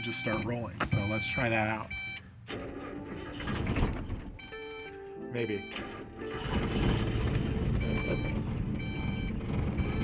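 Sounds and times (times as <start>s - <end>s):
starter motor cranking engine: 5.8s - 10.0s.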